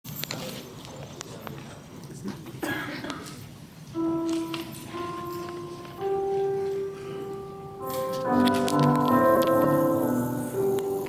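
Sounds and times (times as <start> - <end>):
murmur of congregation: 0.1 - 11.0.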